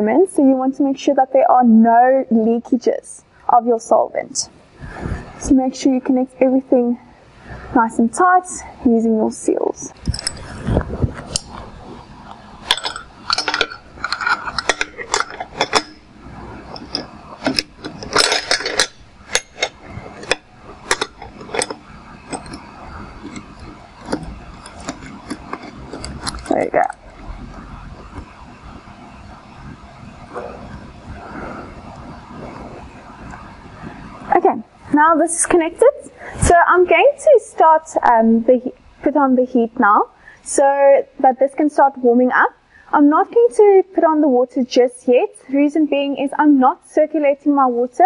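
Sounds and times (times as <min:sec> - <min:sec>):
metal fittings clinking: 0:10.0 - 0:10.7, 0:12.6 - 0:28.4.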